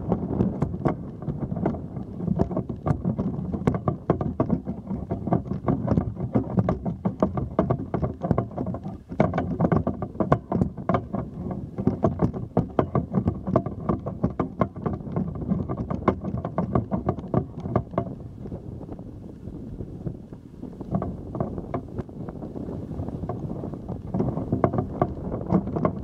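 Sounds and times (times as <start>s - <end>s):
wind on microphone: 0.0s - 26.0s.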